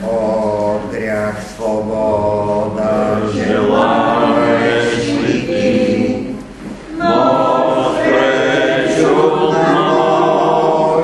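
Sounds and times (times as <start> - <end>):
congregation singing a hymn: 0.0 - 11.0.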